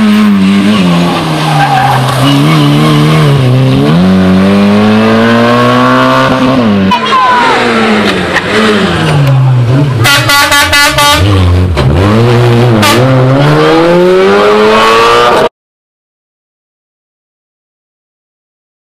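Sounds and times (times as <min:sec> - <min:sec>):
rally car engines revving: 0:00.0 - 0:15.5
tyre squeal: 0:01.5 - 0:02.8.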